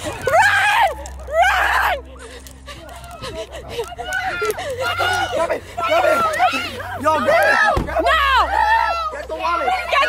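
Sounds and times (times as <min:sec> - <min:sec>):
excited shouting: 0:03.7 - 0:10.0.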